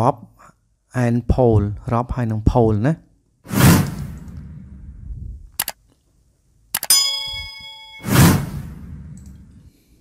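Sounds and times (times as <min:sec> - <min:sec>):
loud whoosh: 0:03.5 - 0:05.4, 0:08.0 - 0:09.6
mouse clicks: 0:05.6 - 0:05.8
bright bell ding: 0:06.8 - 0:08.1.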